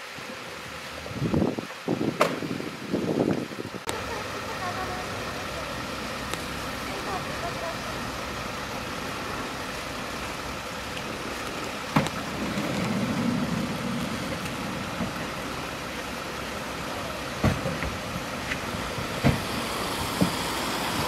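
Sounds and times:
vehicle engines idling: 3.8s - 21.0s.

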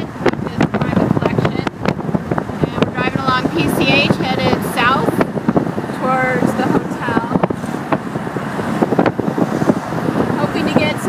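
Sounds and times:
car road noise: 0.0s - 11.0s
wind buffeting microphone: 0.0s - 11.0s.

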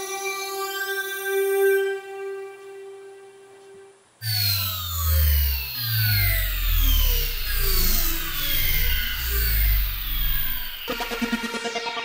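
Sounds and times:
deep synth bass line: 4.2s - 11.6s
falling synth sweeps: 4.2s - 12.0s
electronic pop music: 6.0s - 12.0s.

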